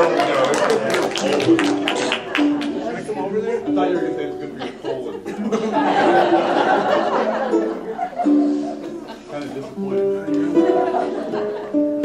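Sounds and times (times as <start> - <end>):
ukulele playing: 1.0 - 12.0
held melody notes: 1.5 - 4.7, 7.2 - 12.0.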